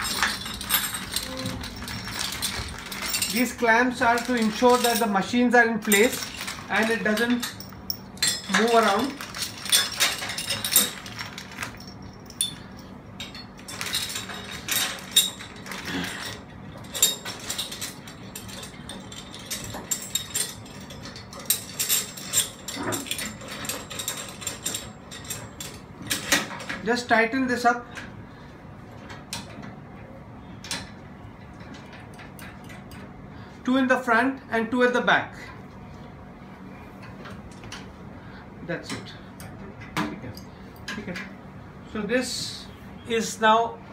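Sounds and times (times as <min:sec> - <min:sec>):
metal clamp parts clinking: 0:00.0 - 0:26.8.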